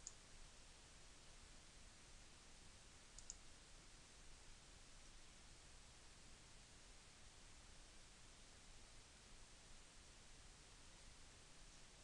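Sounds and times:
computer mouse clicks: 0:00.0 - 0:00.2, 0:03.2 - 0:03.4
faint steady hiss: 0:00.0 - 0:12.0.

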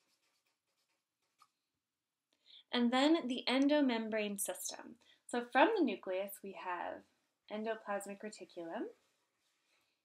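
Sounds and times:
marker writing on paper: 0:00.0 - 0:01.5.

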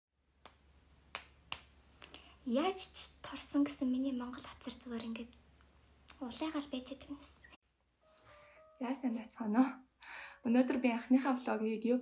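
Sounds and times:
finger snaps: 0:01.2 - 0:02.2.

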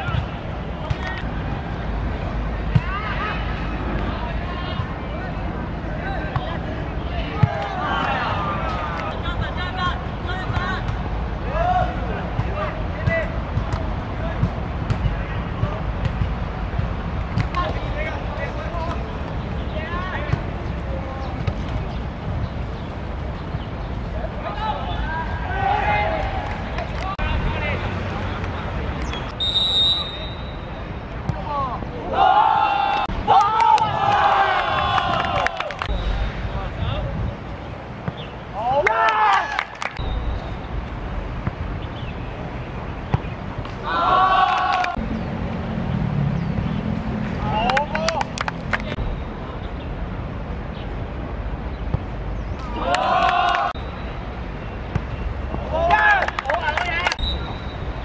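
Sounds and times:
referee's whistle blast: 0:29.4 - 0:30.7, 0:57.2 - 0:57.8
people shouting and calling: 0:31.5 - 0:35.8, 0:43.8 - 0:45.0, 0:52.6 - 0:53.8.

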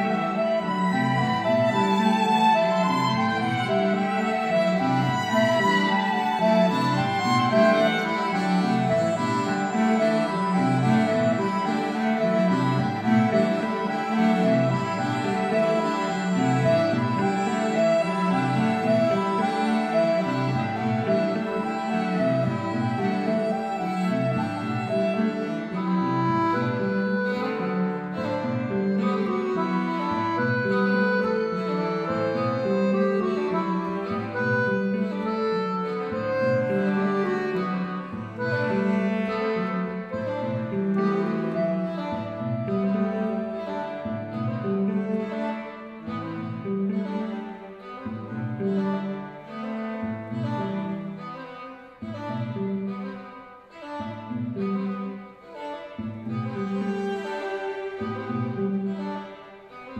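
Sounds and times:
string and accordion ensemble playing: 0:00.0 - 0:59.9.

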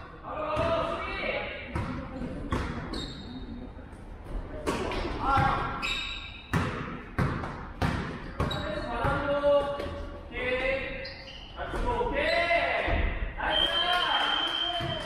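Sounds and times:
basketball bouncing on gym floor: 0:01.7 - 0:03.0, 0:06.5 - 0:10.0.

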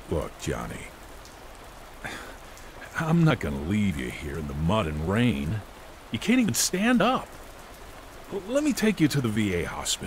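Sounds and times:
steady rainfall: 0:00.0 - 0:10.0.

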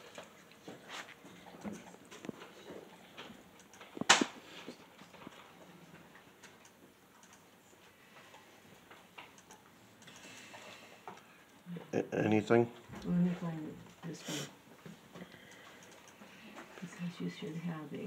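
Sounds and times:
computer mouse clicks: 0:03.6 - 0:04.2, 0:06.4 - 0:07.5, 0:09.2 - 0:11.6, 0:15.3 - 0:16.3.

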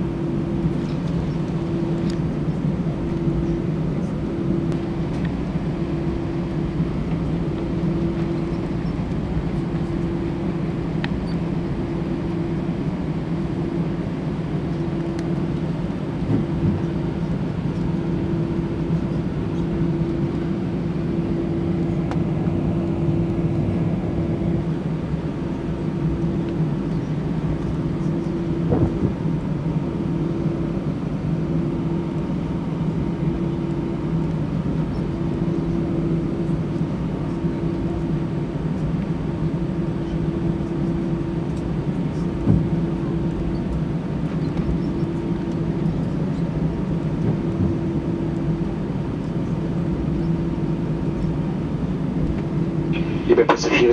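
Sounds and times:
aircraft cabin hum: 0:00.0 - 0:53.9
engine rumble: 0:00.0 - 0:53.9.

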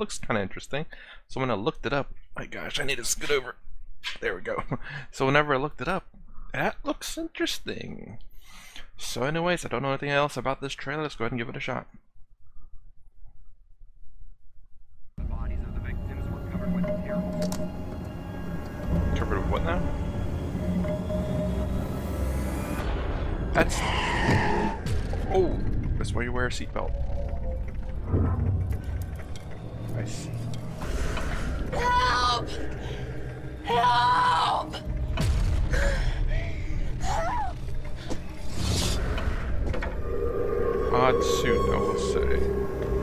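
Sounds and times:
low rumble: 0:15.2 - 0:43.0
humming drone: 0:15.6 - 0:26.0, 0:37.8 - 0:43.0
wavering cry: 0:39.9 - 0:43.0.

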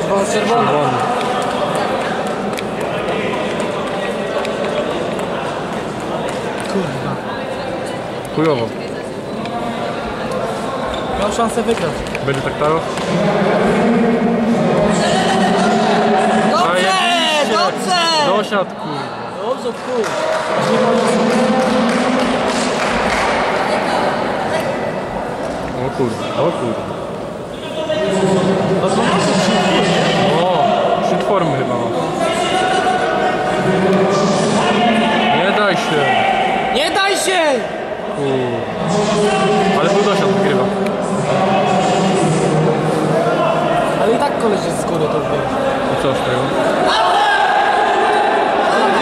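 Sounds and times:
crowd murmur: 0:00.0 - 0:49.0
spectators shouting and cheering: 0:12.7 - 0:19.1, 0:45.4 - 0:49.0.

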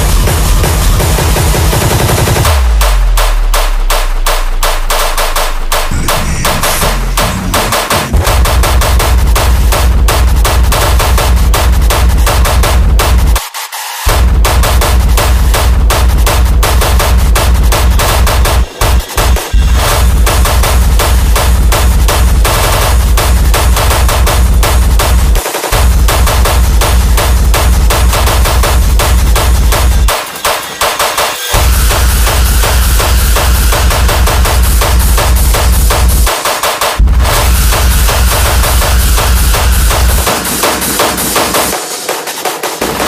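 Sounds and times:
pounding distorted kick drum: 0:00.0 - 0:43.0.

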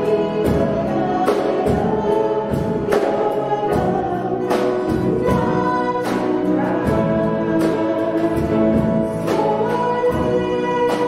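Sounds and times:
drums and cymbals: 0:00.0 - 0:11.0
grand piano: 0:00.0 - 0:11.0
people singing: 0:00.0 - 0:11.0.

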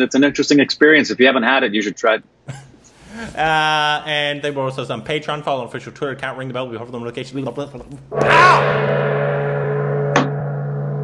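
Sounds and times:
gong ringing: 0:08.1 - 0:11.0.

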